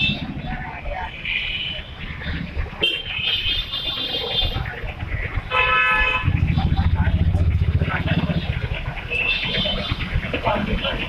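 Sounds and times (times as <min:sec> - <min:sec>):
crowd voices: 0:00.0 - 0:11.0
street traffic: 0:00.0 - 0:11.0
vehicle horn honk: 0:05.5 - 0:06.4
truck engine rumbling: 0:06.0 - 0:11.0.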